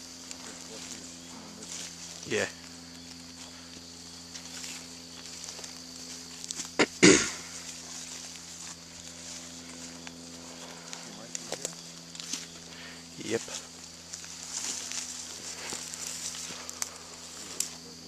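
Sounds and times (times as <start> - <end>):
faint steady hum: 0.0 - 18.0
footsteps through dry leaves: 0.0 - 18.0.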